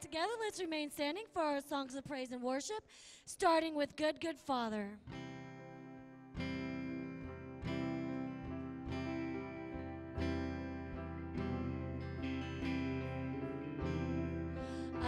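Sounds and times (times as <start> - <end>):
guitar chords ringing: 5.1 - 15.0.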